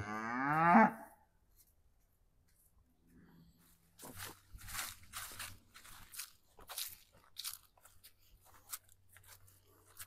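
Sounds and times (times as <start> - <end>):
cow mooing: 0.0 - 1.1.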